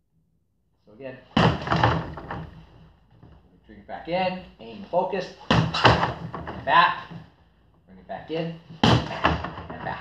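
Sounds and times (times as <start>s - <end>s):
swinging arm clattering: 5.4s - 7.2s
strike thud on padded target: 8.8s - 9.6s.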